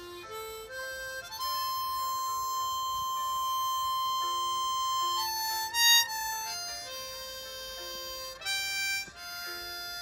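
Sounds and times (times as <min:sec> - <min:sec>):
fainter lower harmonica tone: 0:00.0 - 0:10.0
harmonica high note: 0:00.0 - 0:10.0.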